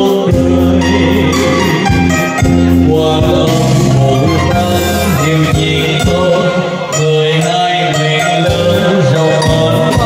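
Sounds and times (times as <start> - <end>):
brass band playing: 0.7 - 7.0.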